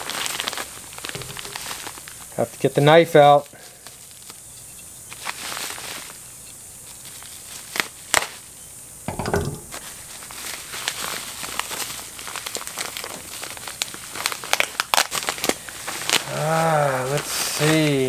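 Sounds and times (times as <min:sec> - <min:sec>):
bubble wrap snapping: 0:00.0 - 0:02.5, 0:05.1 - 0:06.2, 0:06.8 - 0:08.5, 0:09.7 - 0:18.0
bubble wrap crinkling: 0:00.0 - 0:08.6, 0:09.7 - 0:18.0.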